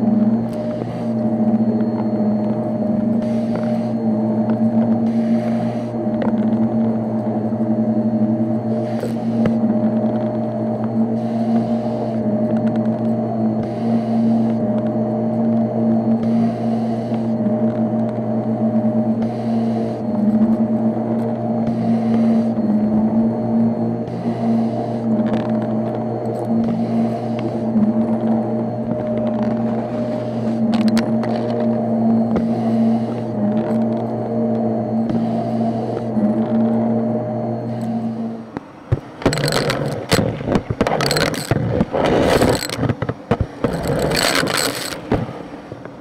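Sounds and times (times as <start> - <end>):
vacuum cleaner on carpet: 0.0 - 38.6.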